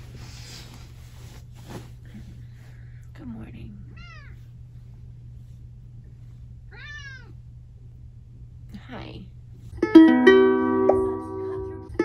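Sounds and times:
steady low hum: 0.0s - 12.0s
cat meowing: 4.0s - 4.4s, 6.7s - 7.4s.

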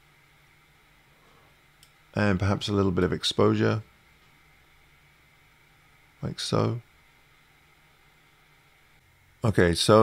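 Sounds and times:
faint room-tone hiss: 0.0s - 10.0s.

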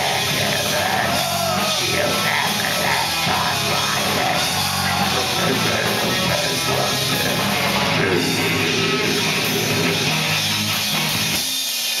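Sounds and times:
bass guitar: 0.0s - 11.6s
drums and cymbals: 0.0s - 12.0s
electric guitars: 0.0s - 12.0s.

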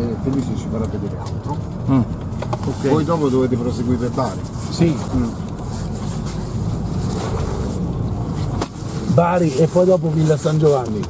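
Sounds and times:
car engine and road noise: 0.0s - 11.0s.

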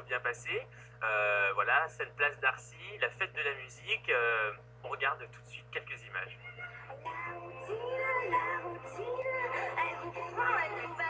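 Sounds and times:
woman singing into a microphone: 6.8s - 11.0s.

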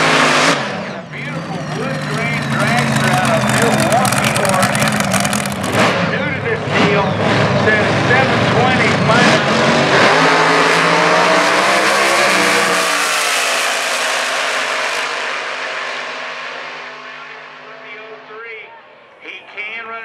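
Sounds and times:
race car engines roaring: 0.0s - 20.0s.

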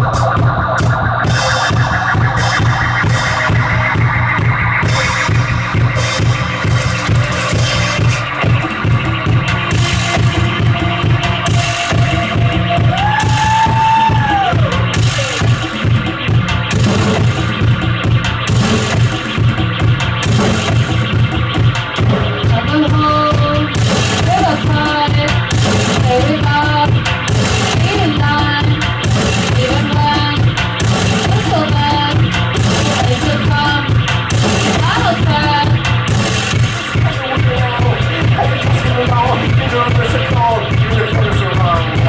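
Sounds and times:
swooping tone: 0.0s - 8.9s
drum kit: 0.0s - 42.0s
pulsing synth and bass drone: 0.0s - 42.0s.

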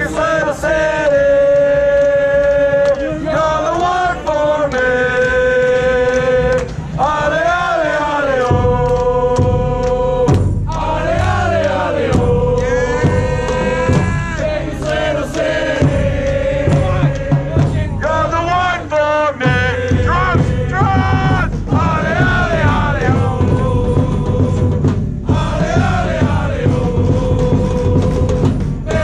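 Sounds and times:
steady low drum beat: 0.0s - 29.0s
supporters singing a chant: 0.0s - 29.0s.

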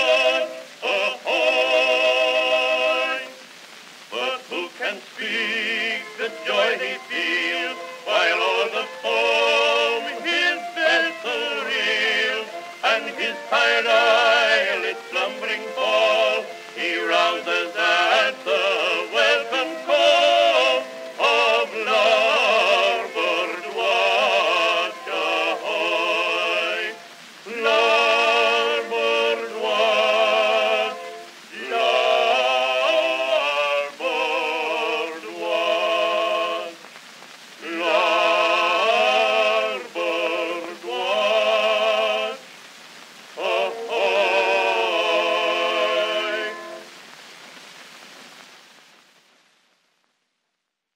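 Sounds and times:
men singing a duet: 0.0s - 3.4s, 4.1s - 36.8s, 37.6s - 42.5s, 43.4s - 46.9s
surface noise hiss: 0.0s - 49.3s.

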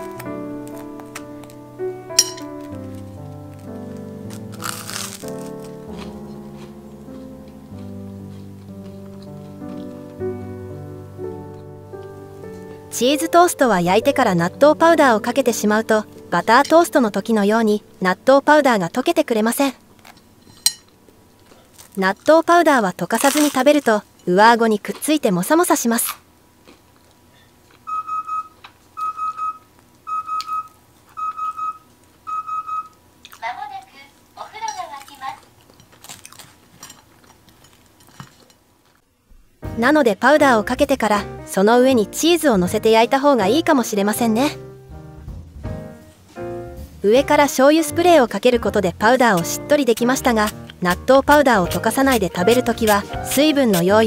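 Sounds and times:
background music: 0.0s - 20.7s, 39.6s - 54.0s
bite into crisp toast: 4.3s - 6.8s
recorded voice announcing: 39.8s - 44.6s, 47.0s - 54.0s.

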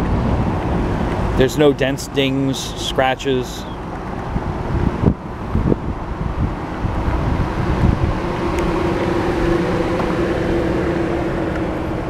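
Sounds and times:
motor vehicle rumble: 0.0s - 12.0s
steady hum: 0.0s - 12.0s.

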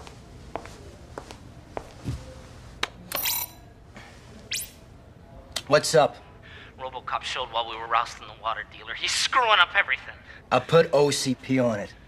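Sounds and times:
bright ringing clink: 3.1s - 3.7s.

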